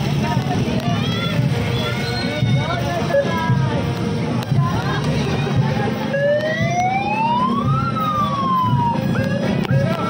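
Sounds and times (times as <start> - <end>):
steady background din: 0.0 - 10.0
siren wailing: 6.1 - 10.0.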